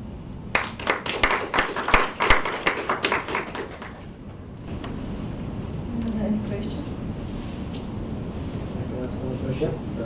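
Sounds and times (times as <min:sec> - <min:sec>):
audience applauding: 0:00.5 - 0:04.1.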